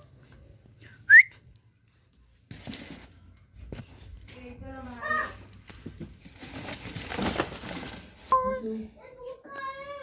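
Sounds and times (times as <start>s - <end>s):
person whistling: 0.8s - 1.4s.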